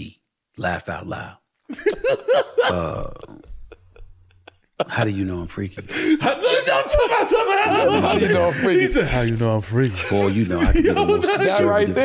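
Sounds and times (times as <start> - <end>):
man's low throaty vocal sound: 2.6 - 4.0.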